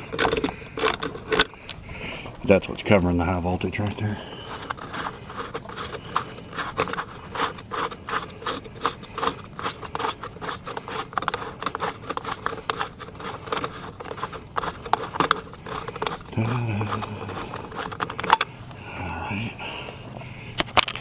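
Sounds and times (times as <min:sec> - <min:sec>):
hands scraping light fixture: 0:00.0 - 0:01.6, 0:03.8 - 0:18.6.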